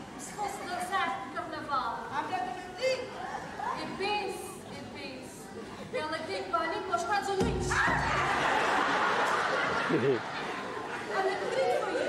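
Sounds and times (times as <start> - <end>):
voices talking and chattering: 0.0 - 12.0.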